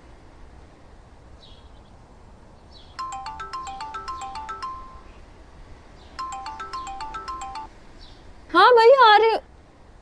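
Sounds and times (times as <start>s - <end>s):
mobile phone ringtone melody: 3.0s - 5.2s, 6.2s - 7.8s.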